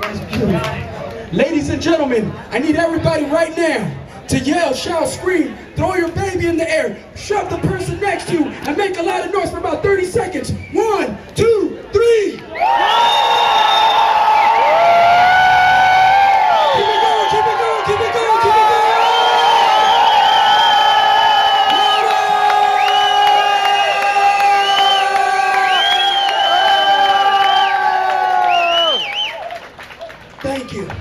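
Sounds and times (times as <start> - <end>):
crowd yelling and screaming: 12.5 - 29.7.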